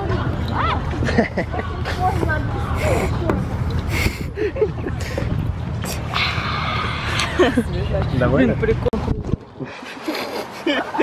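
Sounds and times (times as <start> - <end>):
voices talking and laughing: 0.0 - 11.0.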